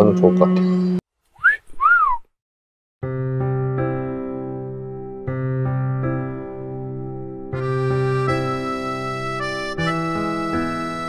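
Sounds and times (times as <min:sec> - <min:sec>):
two-note wolf whistle: 0:01.4 - 0:02.3.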